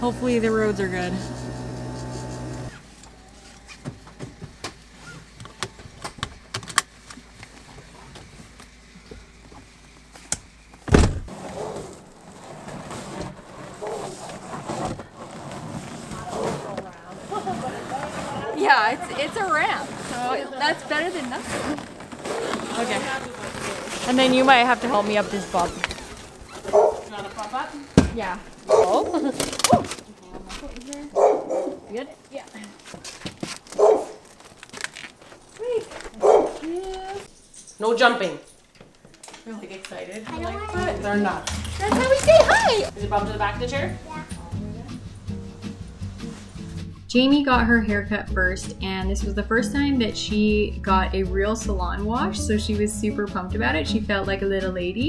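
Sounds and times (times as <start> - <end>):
loud thump: 10.9 - 11.3
puppy barking: 26.6 - 27.1, 28.6 - 29.1, 31.1 - 31.8, 33.8 - 34.2, 36.2 - 36.6
puppy yelp: 26.6 - 27.1, 33.8 - 34.2.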